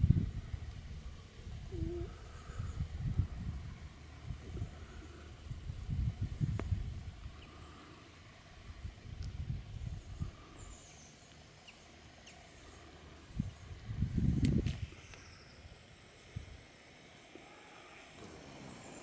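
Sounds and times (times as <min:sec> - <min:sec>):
wind buffeting microphone: 0:00.0 - 0:07.6, 0:08.5 - 0:10.7, 0:13.2 - 0:16.7
faint rural ambience: 0:00.0 - 0:19.0.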